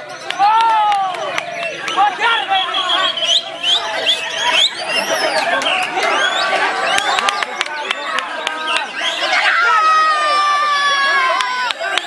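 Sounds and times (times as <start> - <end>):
birds whistling and trilling: 0.0 - 9.5
crowd chatter: 0.0 - 12.0.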